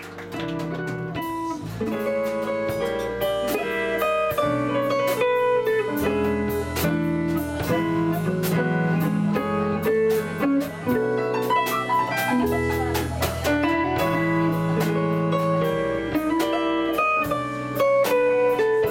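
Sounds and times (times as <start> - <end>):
electric guitar playing: 0.0 - 18.9
stage piano: 0.0 - 18.9
upright bass: 0.0 - 18.9.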